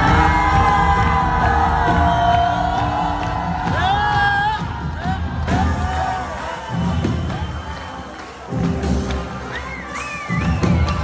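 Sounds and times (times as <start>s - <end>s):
crowd cheering and whooping: 0.0s - 11.0s.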